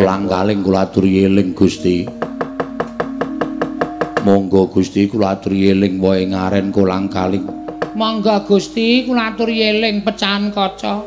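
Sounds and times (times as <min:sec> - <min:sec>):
held musical note: 0:00.0 - 0:10.5
rapid wooden knocking: 0:02.0 - 0:04.3, 0:07.4 - 0:08.4.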